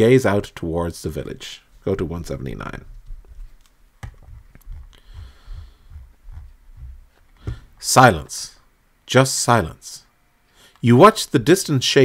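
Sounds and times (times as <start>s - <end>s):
soft low thumps: 2.8s - 7.8s.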